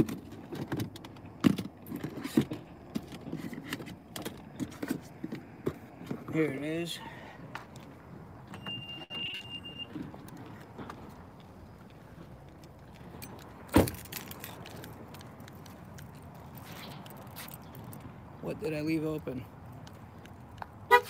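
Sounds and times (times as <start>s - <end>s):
high electronic beep: 8.5s - 9.9s
keys jingling: 13.1s - 18.0s
car door slamming: 13.7s - 14.1s.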